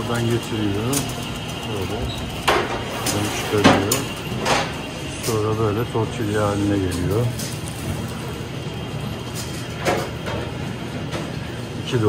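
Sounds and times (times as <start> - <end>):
machinery rumbling: 0.0 - 12.0.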